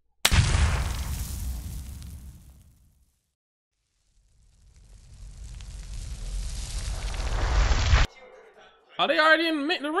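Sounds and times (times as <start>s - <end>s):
rush of flame with deep rumble: 3.9s - 8.1s.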